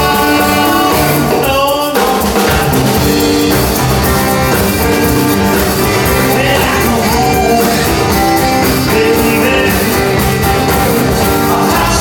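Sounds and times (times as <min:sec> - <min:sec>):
person singing: 0:00.0 - 0:03.6, 0:04.5 - 0:12.0
live rock and roll band: 0:00.0 - 0:12.0.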